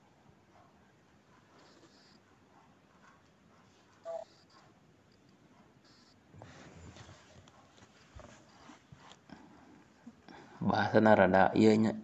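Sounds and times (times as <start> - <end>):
faint rustles: 1.3 - 10.6.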